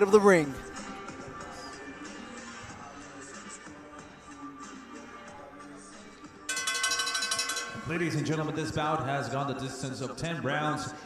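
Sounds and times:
faint background music: 0.0 - 11.0
boxing ring bell ringing: 6.5 - 9.1.

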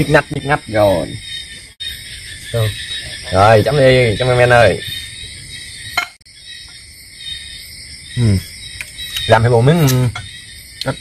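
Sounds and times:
crickets and insects chirping: 0.0 - 11.0.

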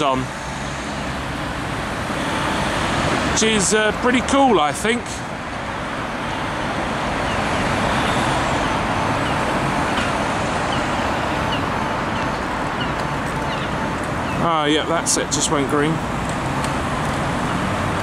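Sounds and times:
road traffic passing: 0.0 - 18.0.

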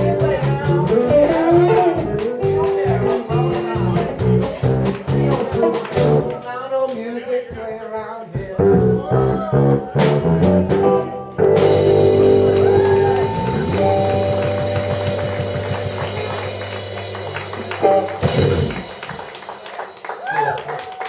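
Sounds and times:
live rock band: 0.0 - 6.5, 8.4 - 20.8.

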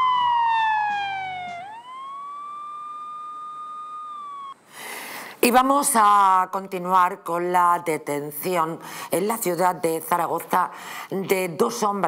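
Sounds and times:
siren-like electronic tone: 0.0 - 4.6.

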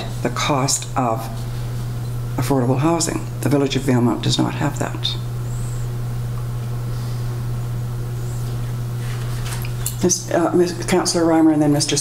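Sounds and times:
person speaking: 0.0 - 1.5, 2.4 - 5.3, 10.0 - 12.0
low hum: 0.0 - 11.3.

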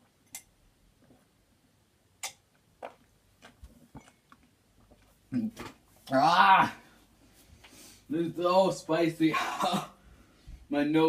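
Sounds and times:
person groaning: 6.2 - 6.9, 9.3 - 10.0.

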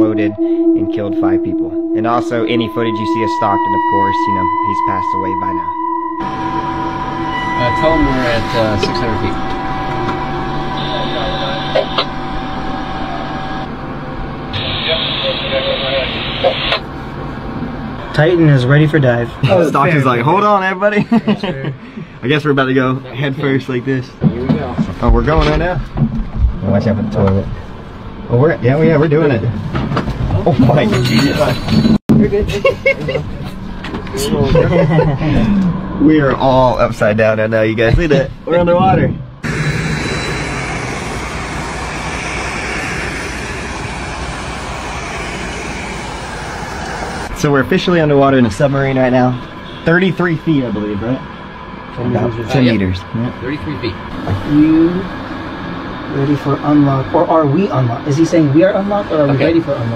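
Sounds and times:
low steady rumble: 0.0 - 16.2
two-way radio hiss: 14.6 - 16.8
wind rushing: 39.4 - 47.5.

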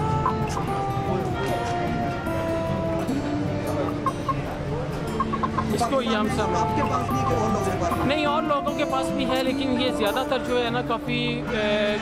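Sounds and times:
hen clucking: 5.1 - 8.4.

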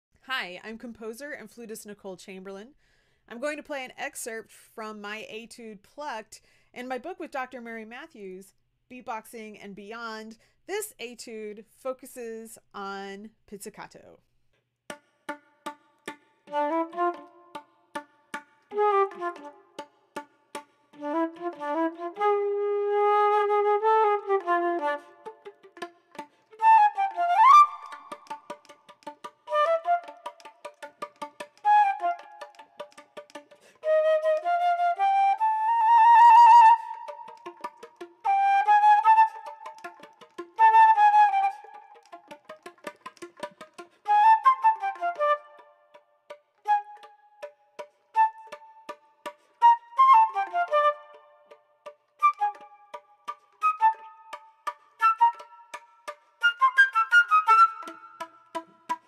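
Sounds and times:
solo flute playing: 16.5 - 17.7, 18.7 - 19.8, 21.0 - 25.7, 26.5 - 28.7, 29.4 - 30.9, 31.5 - 33.0, 33.8 - 42.4, 44.0 - 46.0, 46.7 - 49.0, 49.6 - 51.6, 52.2 - 58.6.

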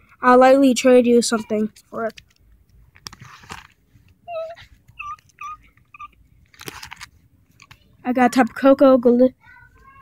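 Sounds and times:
plastic sleeve pages crinkling: 1.7 - 5.3, 6.4 - 7.9.

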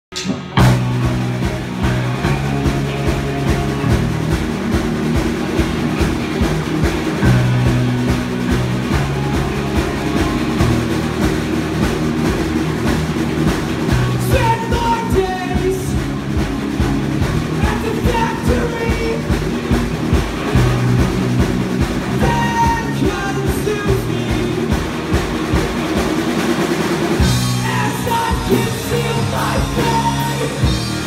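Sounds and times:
bass guitar: 0.0 - 31.0
distorted electric guitars: 0.0 - 31.0
drum kit: 0.0 - 31.0
person singing: 14.2 - 16.1, 17.6 - 19.4, 22.2 - 24.9, 27.4 - 31.0.

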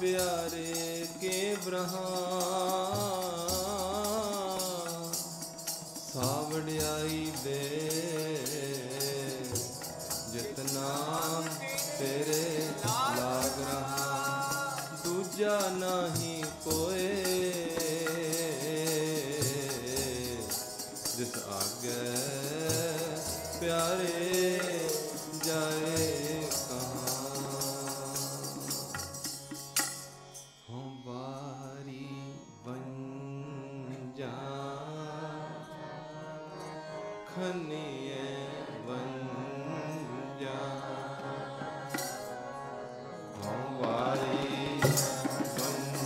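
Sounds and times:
tabla: 0.0 - 30.3, 40.8 - 42.4, 43.3 - 46.0
harmonium: 0.0 - 46.0
man singing devotional song: 0.0 - 46.0.

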